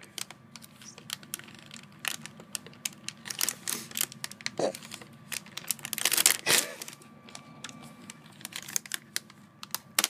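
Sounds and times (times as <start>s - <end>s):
plastic snack bag crinkling: 0.0s - 10.0s.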